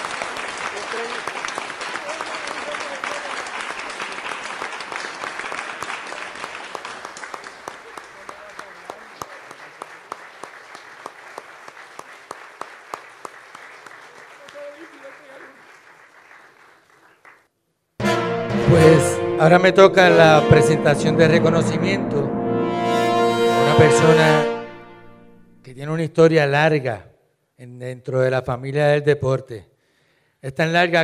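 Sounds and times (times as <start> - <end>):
audience applauding: 0.0 - 17.5.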